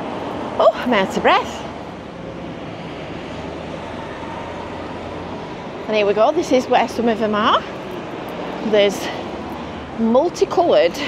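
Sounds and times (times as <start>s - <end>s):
engine rumble: 0.0s - 11.0s.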